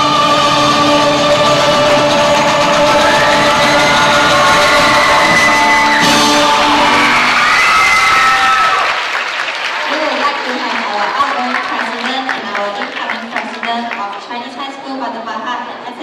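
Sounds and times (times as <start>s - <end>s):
rock band playing: 0.0s - 7.6s
audience applauding and cheering: 0.0s - 14.3s.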